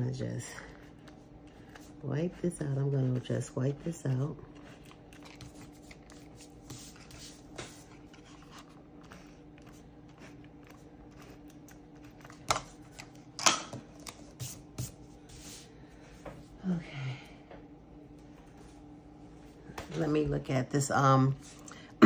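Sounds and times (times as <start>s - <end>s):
paper handling: 4.5s - 13.2s.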